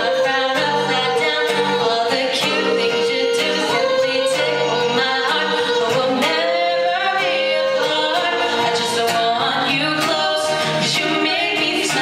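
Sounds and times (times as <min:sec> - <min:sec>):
strummed acoustic guitar: 0:00.0 - 0:12.0
woman singing long notes: 0:00.0 - 0:12.0.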